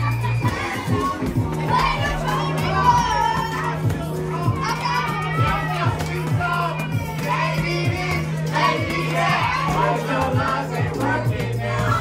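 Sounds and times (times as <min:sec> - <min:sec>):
crowd of voices: 0:00.0 - 0:12.0
karaoke backing track: 0:00.0 - 0:12.0
people singing along: 0:00.0 - 0:12.0.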